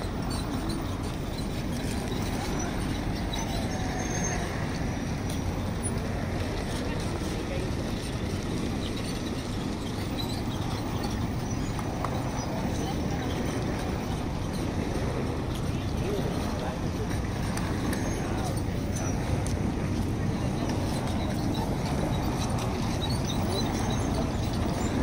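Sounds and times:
chatter of passers-by: 0.0 - 25.0
road traffic rumble: 0.0 - 25.0.

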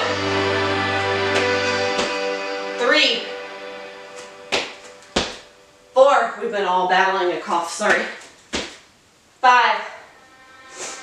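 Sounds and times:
feet thudding on rug-covered floor: 1.3 - 2.3, 4.1 - 5.5, 8.5 - 8.8.

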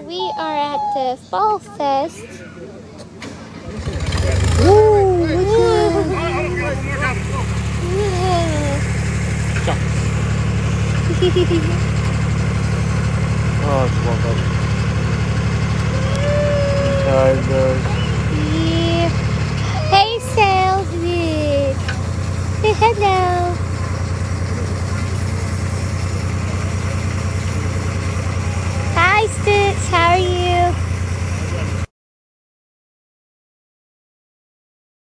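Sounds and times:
tractor engine droning: 0.0 - 31.9
wordless vocal cries and squeals: 15.9 - 20.0.

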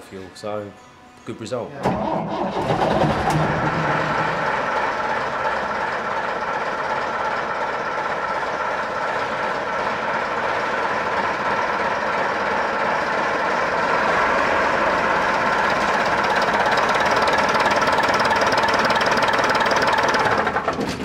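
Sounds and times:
diesel bus engine idling: 2.0 - 20.9.

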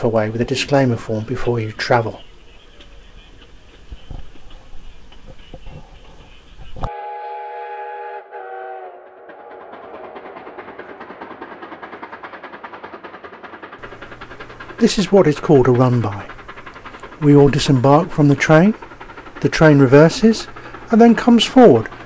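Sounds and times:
moving train rumble: 0.0 - 22.0
steam locomotive chuffing: 0.0 - 22.0
steam locomotive whistle: 4.8 - 11.4.

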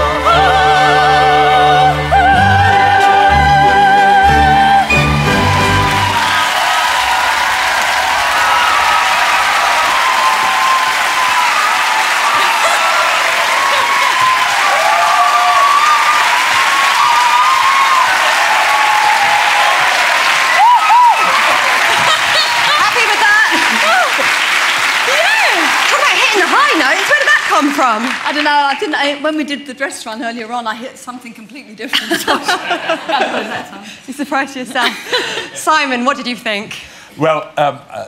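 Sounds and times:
audience applauding: 4.9 - 29.2.

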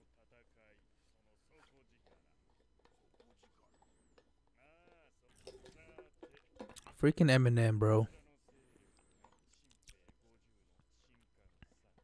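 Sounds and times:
faint dialogue: 0.1 - 12.0.

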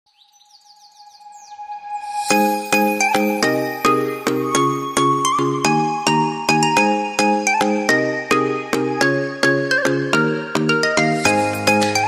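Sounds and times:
bird-like chirps: 0.1 - 4.4
held synth tone: 1.6 - 4.8.

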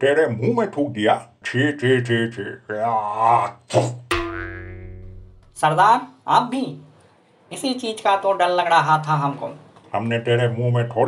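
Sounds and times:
cartoon boing twang: 4.1 - 5.6.

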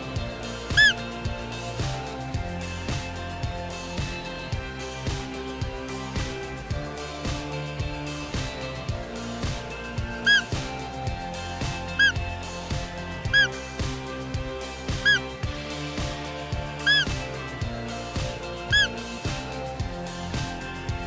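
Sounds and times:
background music: 0.0 - 21.0
high-pitched deer calls: 0.7 - 1.0, 10.2 - 10.5, 13.3 - 13.6, 15.0 - 15.3, 16.8 - 17.1, 18.7 - 19.0.

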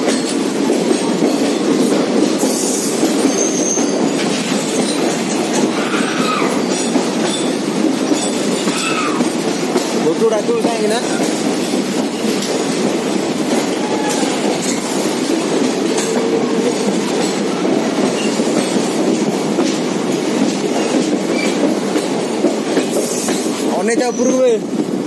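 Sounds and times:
train running in tunnel: 0.0 - 25.0
wheels clattering on rail joints: 0.0 - 25.0.

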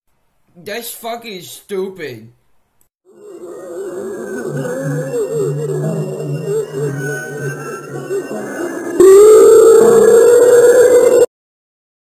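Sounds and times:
loud distorted wail rising: 3.1 - 11.3.

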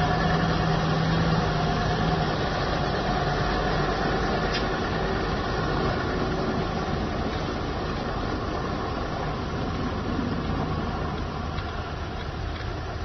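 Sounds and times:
truck diesel engine passing: 0.0 - 13.0.

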